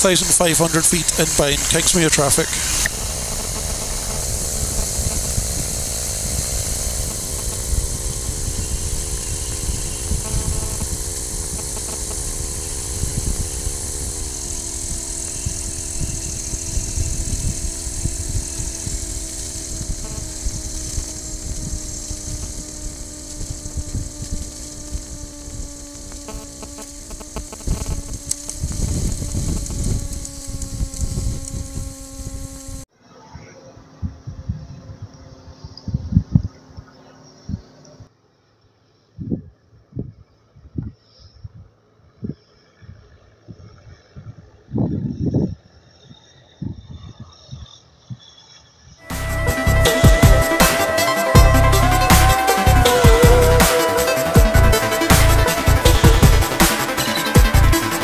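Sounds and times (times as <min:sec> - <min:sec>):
wind noise on microphone: 0:00.0 - 0:32.8, 0:34.0 - 0:36.6, 0:39.2 - 0:45.8, 0:46.6 - 0:48.2, 0:51.4 - 0:58.0
light aircraft engine and propeller: 0:00.0 - 0:58.0.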